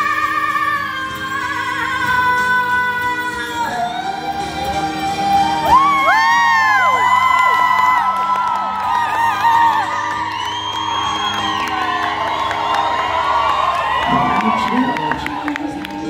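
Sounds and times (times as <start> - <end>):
audience whooping: 4.2 - 16.0.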